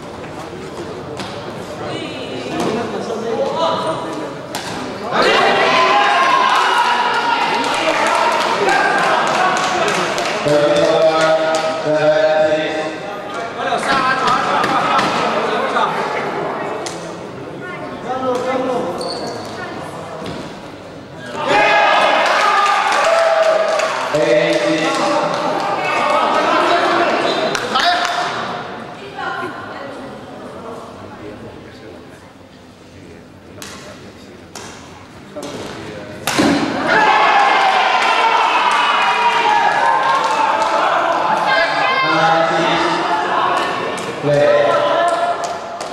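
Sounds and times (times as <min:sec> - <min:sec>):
spectator chatter: 0:00.0 - 0:45.9
crowd shouting and cheering: 0:04.9 - 0:15.9, 0:21.2 - 0:28.8, 0:36.3 - 0:45.9.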